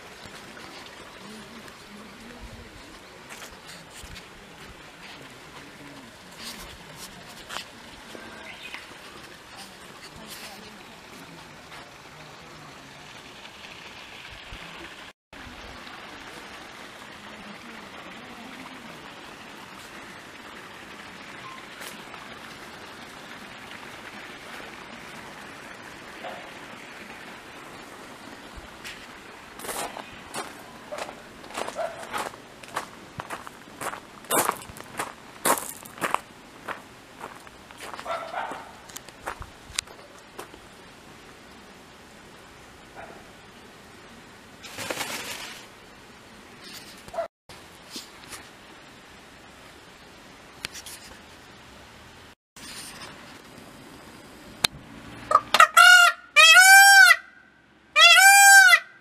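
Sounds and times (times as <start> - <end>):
footsteps on garden path: 0.0 - 12.1, 21.7 - 22.3, 27.8 - 40.7
peacock calling: 55.3 - 59.0.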